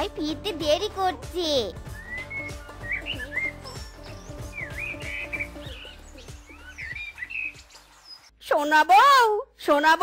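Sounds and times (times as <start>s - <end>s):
soft background music: 0.0s - 8.3s
birds chirping: 0.3s - 8.5s.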